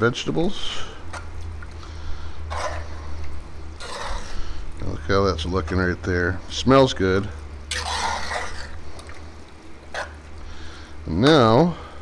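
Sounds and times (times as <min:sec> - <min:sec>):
steady low hum: 0:00.0 - 0:12.0
metal spoon stirring thick chili: 0:02.4 - 0:03.1, 0:03.8 - 0:04.4, 0:07.7 - 0:08.8.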